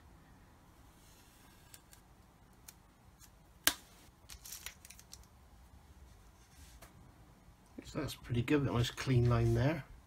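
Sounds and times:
crackly tape rustle: 0:01.1 - 0:07.0.

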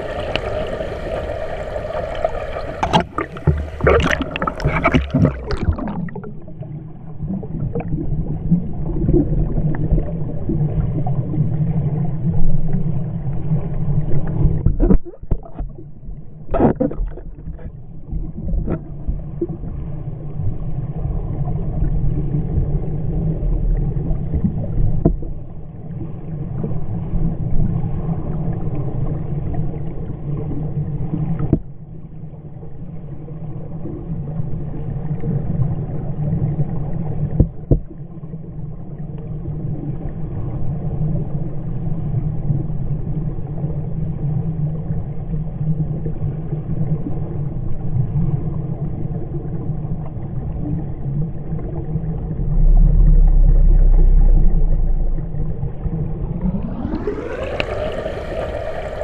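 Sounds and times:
underwater rushing rumble: 0:00.0 - 0:31.8, 0:33.3 - 0:59.0
sharp knocks underwater: 0:02.8 - 0:06.5, 0:14.4 - 0:19.2, 0:24.4 - 0:25.4, 0:37.3 - 0:38.0.

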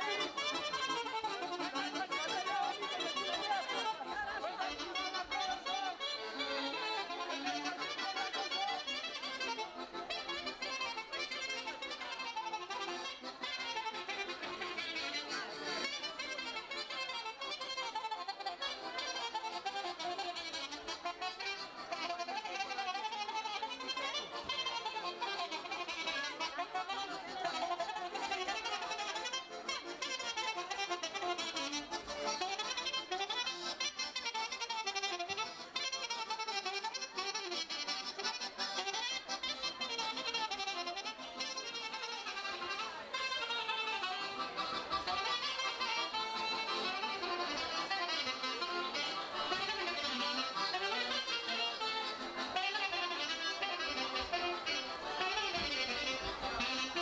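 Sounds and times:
folk dance music with fiddle: 0:00.0 - 0:57.0.

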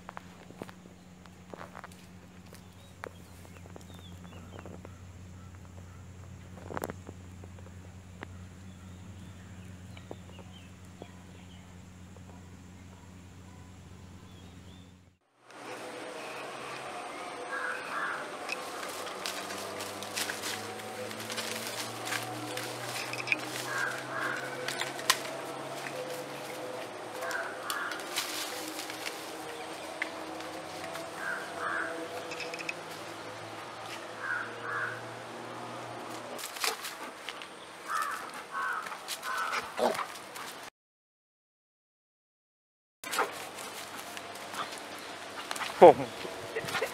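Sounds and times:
dry leaves crackling and rustling: 0:00.0 - 0:12.8, 0:15.5 - 0:40.7, 0:43.1 - 0:46.9.

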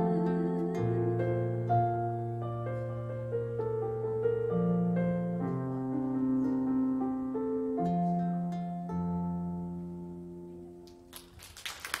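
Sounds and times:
audience applause: 0:11.1 - 0:12.0.

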